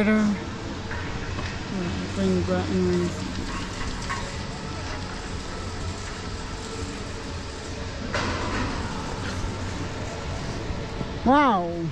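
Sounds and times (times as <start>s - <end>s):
gondola terminal machinery humming: 0.0s - 11.9s.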